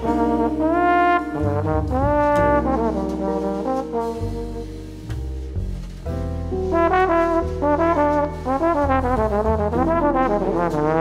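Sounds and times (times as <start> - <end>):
trombone solo: 0.0 - 5.1, 6.5 - 11.0
bass accompaniment: 0.0 - 11.0
piano accompaniment: 0.0 - 11.0.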